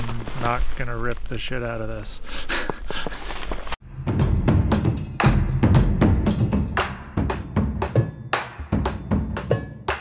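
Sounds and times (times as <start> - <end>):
person gasping: 2.2 - 3.3.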